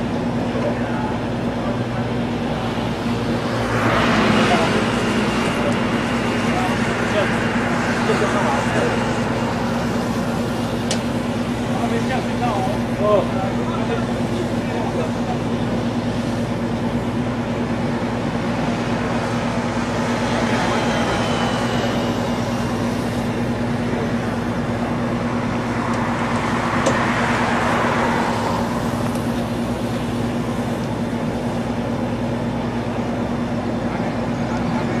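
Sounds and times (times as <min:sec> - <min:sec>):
engine drone: 0:00.0 - 0:35.0.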